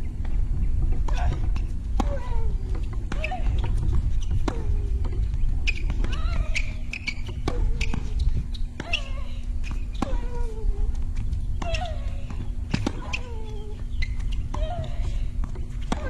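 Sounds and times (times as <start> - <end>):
steady low rumble: 0.0 - 16.0.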